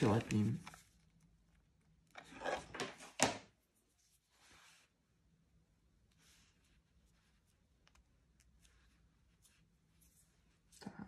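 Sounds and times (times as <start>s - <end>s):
fabric rustling and rubbing: 3.6s - 5.1s, 6.1s - 7.8s, 8.5s - 10.9s.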